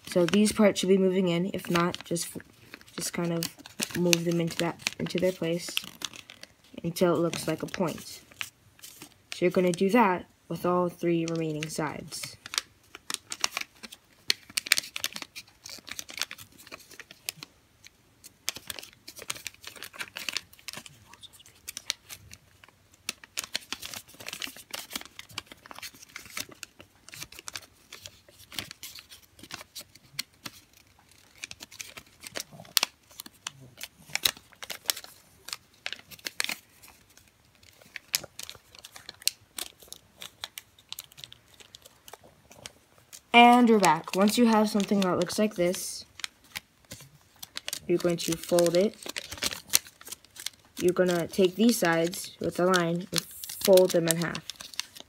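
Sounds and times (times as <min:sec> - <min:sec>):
paper being folded and creased: 0:00.0 - 0:09.9, 0:11.2 - 0:55.0.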